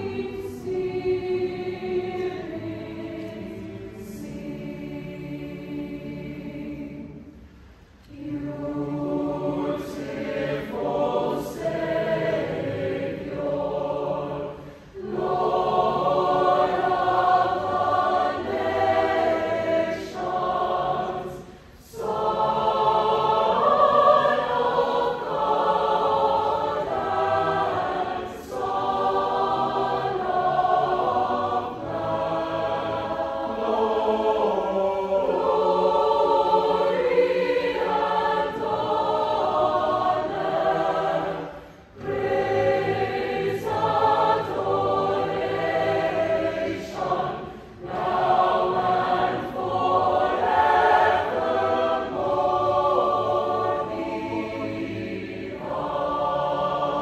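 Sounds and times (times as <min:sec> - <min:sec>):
mixed choir singing a hymn: 0:00.0 - 0:57.0.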